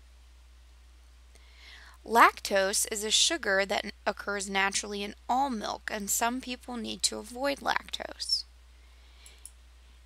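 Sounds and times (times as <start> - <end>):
faint hiss: 0.0 - 4.2, 8.0 - 10.0.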